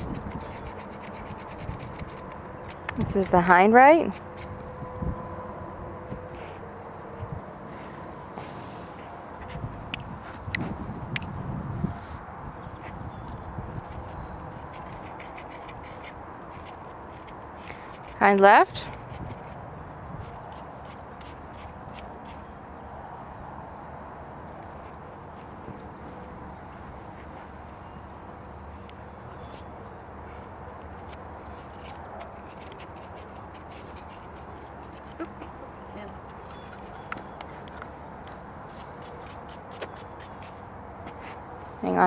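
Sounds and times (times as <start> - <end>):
outdoor background noise: 0.0 - 42.0.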